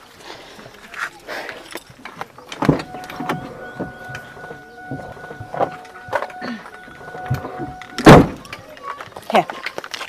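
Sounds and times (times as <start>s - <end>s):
car door opening clunk: 2.6s - 8.5s
steady tone: 2.6s - 8.5s.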